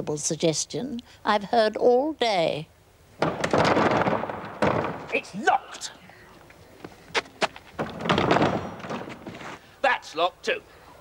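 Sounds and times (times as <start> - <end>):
locked door rattling: 7.8 - 9.3.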